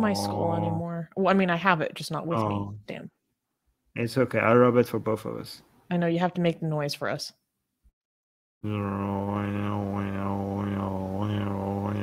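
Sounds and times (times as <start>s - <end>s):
man humming a droning note: 8.6s - 12.0s.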